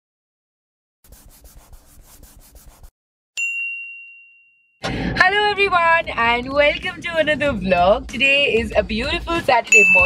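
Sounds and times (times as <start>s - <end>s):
pen scribbling on paper: 1.0s - 2.9s
bright ding: 3.4s - 4.8s, 9.8s - 10.0s.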